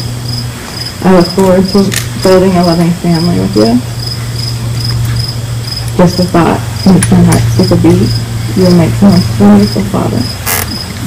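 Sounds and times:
insects chirping: 0:00.0 - 0:11.0
steady low hum: 0:00.0 - 0:11.0.

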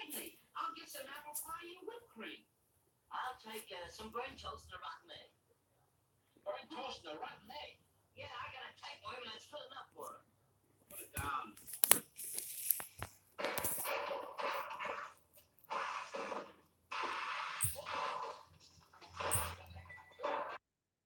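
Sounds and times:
scraping crinkling handling noise: 0:10.9 - 0:13.9.

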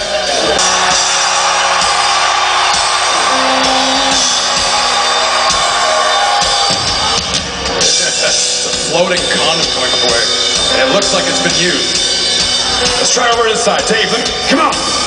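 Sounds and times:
crowd voices: 0:00.0 - 0:14.4
drums: 0:00.0 - 0:15.0
live rock band playing: 0:02.6 - 0:05.7, 0:07.1 - 0:15.0.

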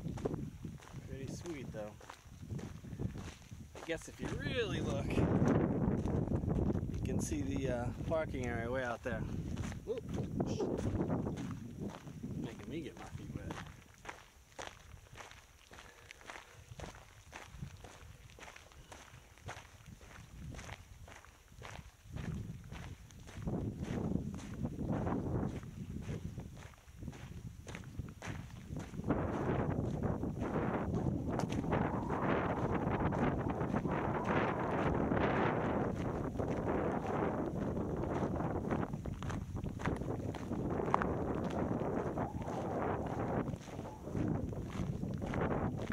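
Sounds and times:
wind rushing on microphone: 0:00.0 - 0:15.4, 0:16.3 - 0:45.9
footsteps on a salt-crusted trail: 0:00.0 - 0:45.9.

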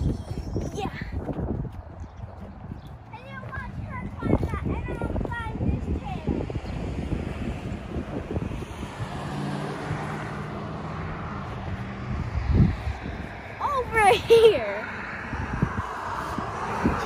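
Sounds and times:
wind on microphone: 0:00.0 - 0:17.0
vehicle passing: 0:01.5 - 0:17.0.

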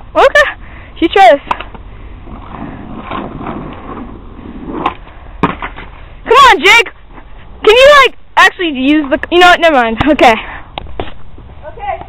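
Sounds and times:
skateboard wheels rolling on asphalt: 0:00.0 - 0:12.0.

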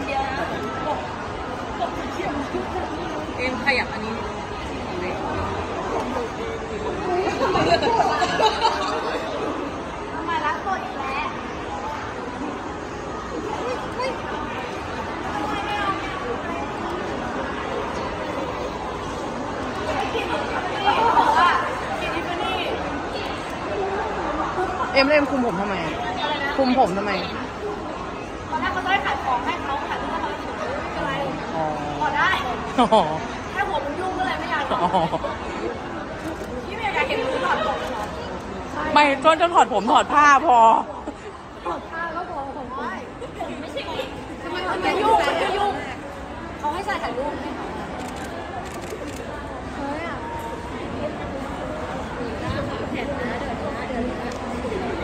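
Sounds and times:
people chattering: 0:00.0 - 0:55.0.

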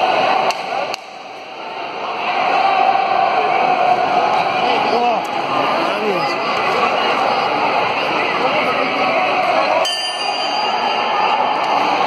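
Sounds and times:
arena background noise: 0:00.0 - 0:12.0
boxing ring bell: 0:09.8 - 0:11.1.

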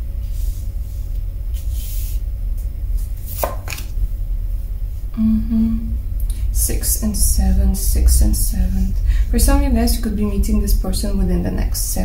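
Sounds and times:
steady low hum: 0:00.0 - 0:12.0
card slaps: 0:03.3 - 0:03.9.

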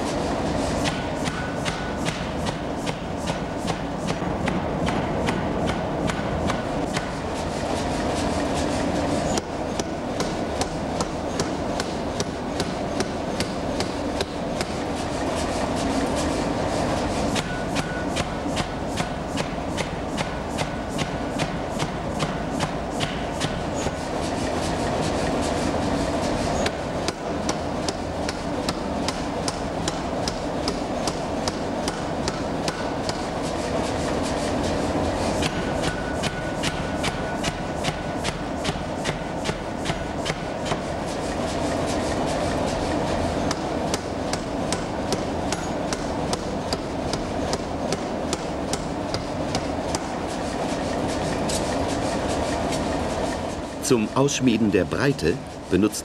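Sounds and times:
power hammer striking steel: 0:00.8 - 0:07.2, 0:09.3 - 0:14.8, 0:17.4 - 0:24.0, 0:26.6 - 0:33.3, 0:35.4 - 0:40.8, 0:43.5 - 0:50.1.

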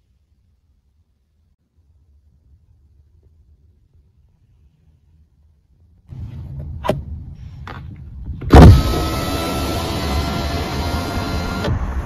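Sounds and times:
car window thump: 0:08.4 - 0:09.2
electric window motor whine: 0:08.5 - 0:12.0.

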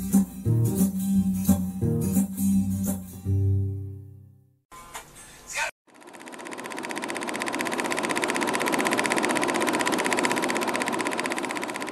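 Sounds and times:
film projector clattering: 0:05.9 - 0:11.9.

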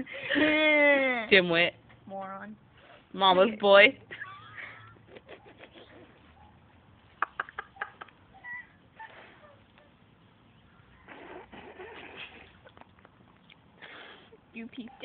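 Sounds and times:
quiet breathy laughter: 0:04.1 - 0:06.4, 0:07.1 - 0:10.0.

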